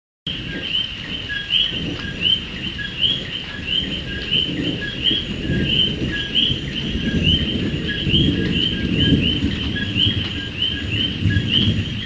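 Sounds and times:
frogs calling: 0.3s - 12.0s.

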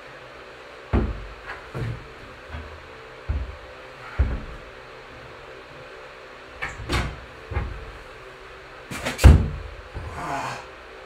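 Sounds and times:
hands and feet slapping climbing holds: 0.9s - 10.7s.

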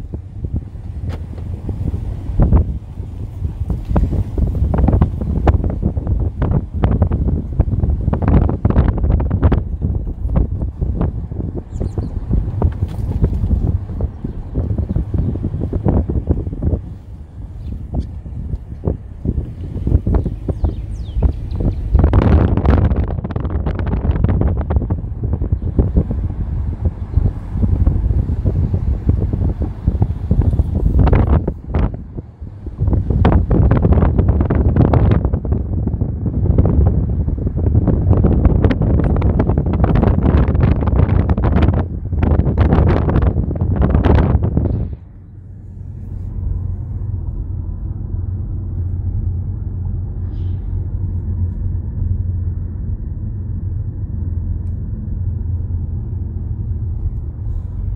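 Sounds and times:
car interior rumble: 0.0s - 57.9s
wind buffeting microphone: 0.0s - 57.9s.

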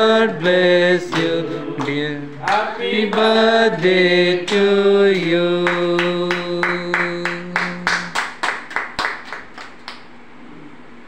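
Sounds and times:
rhythmic hand claps: 1.0s - 10.1s.

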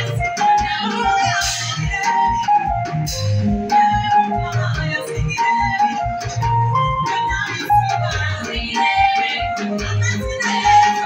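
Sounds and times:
bass: 0.0s - 11.0s
electronic keyboard melody: 0.0s - 11.0s.

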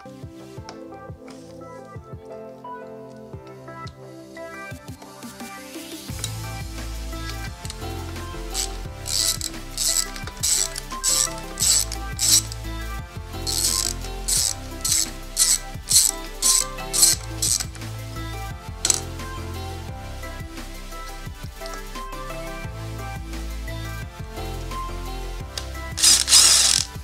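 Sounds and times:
background music: 0.0s - 27.0s
ratchet wrench clicking: 7.2s - 12.6s, 13.4s - 17.8s, 18.8s - 19.0s, 26.0s - 27.0s.

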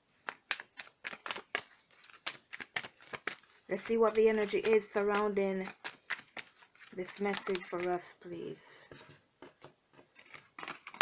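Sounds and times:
cards being shuffled: 0.2s - 8.0s, 8.9s - 11.0s.

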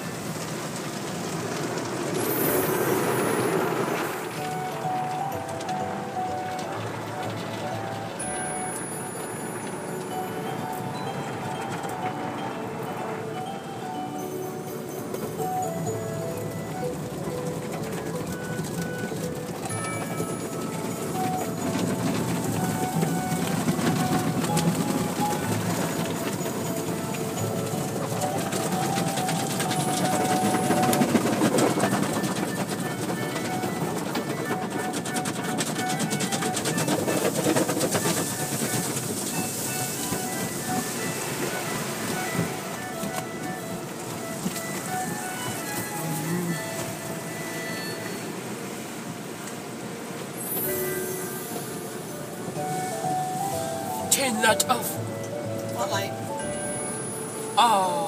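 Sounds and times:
water spray on car: 0.0s - 10.2s, 16.3s - 51.8s
music playing: 2.1s - 58.0s
cloth brushes washing car: 18.1s - 48.0s.

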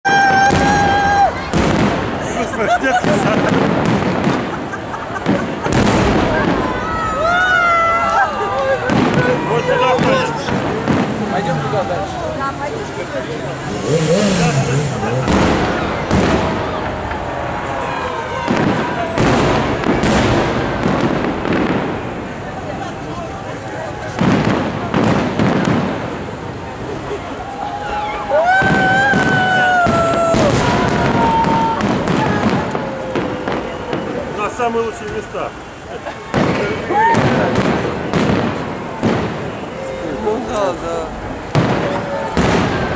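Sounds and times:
crowd voices shouting: 0.0s - 42.9s
fireworks bangs: 0.1s - 42.9s.

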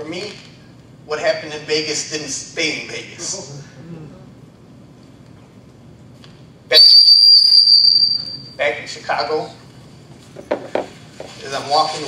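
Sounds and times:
high-pitched whistle-like tone: 6.7s - 8.6s.

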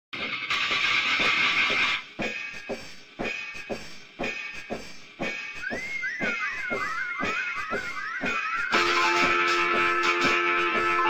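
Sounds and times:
distorted lo-fi rock noise: 0.2s - 11.0s
faint beats: 2.0s - 11.0s.

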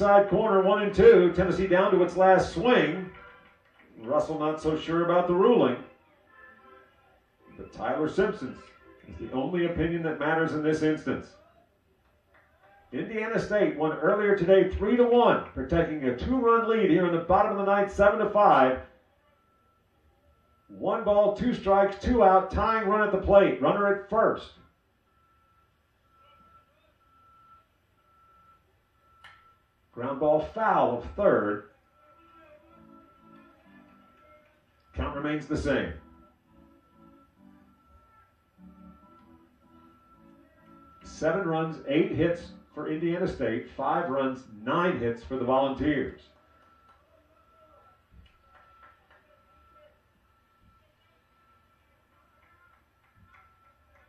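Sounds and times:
vehicle reversing alarm beeps: 14.4s - 54.0s.

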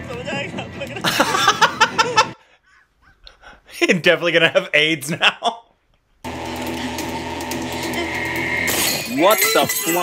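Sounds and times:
drone of held tones: 6.3s - 8.9s.

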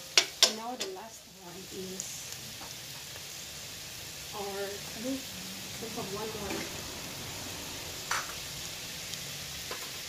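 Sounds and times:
meat sizzling in a frying pan: 0.0s - 10.0s.

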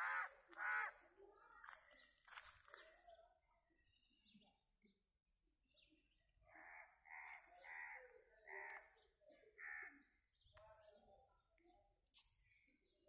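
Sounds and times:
faint bird calls: 0.0s - 3.2s.

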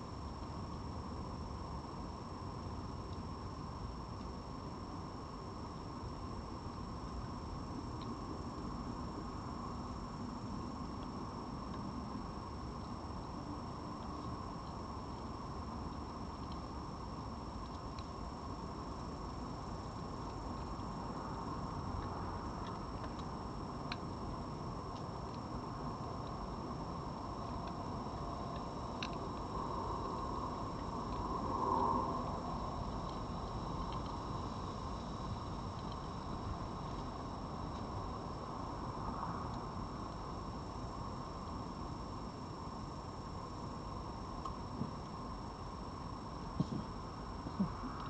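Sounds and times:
steady background hiss: 0.0s - 48.0s
fox eating dry food clicks: 15.9s - 16.7s, 21.8s - 24.2s, 28.5s - 29.5s.

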